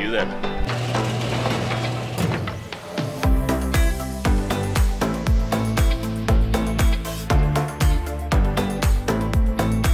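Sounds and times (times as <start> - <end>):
garage door motor hum: 0.5 - 3.4.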